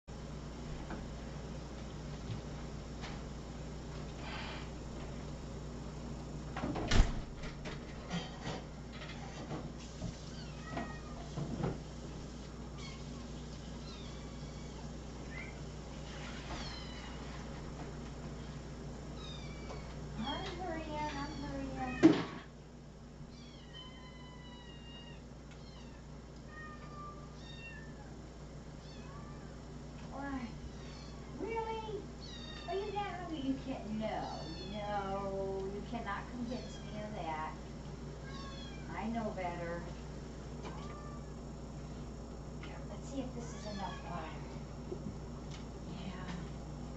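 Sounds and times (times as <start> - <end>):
low background hum: 0.1 - 46.9
cats meowing: 10.3 - 11.4, 13.7 - 15.7, 16.4 - 17.4, 19.1 - 22.4, 23.3 - 28.2, 28.8 - 29.6, 30.7 - 31.5, 32.2 - 33.2, 34.2 - 35.0, 38.2 - 39.0, 40.6 - 41.4, 43.4 - 44.5.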